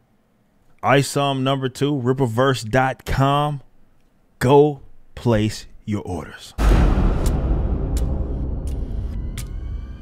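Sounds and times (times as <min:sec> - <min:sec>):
deep low rumble: 0:06.6 - 0:10.0.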